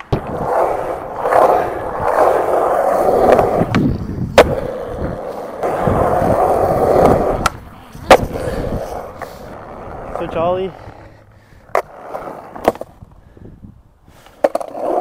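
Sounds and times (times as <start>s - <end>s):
skateboard clacking: 0.0s - 13.0s
skateboard wheels rolling on concrete: 0.0s - 15.0s.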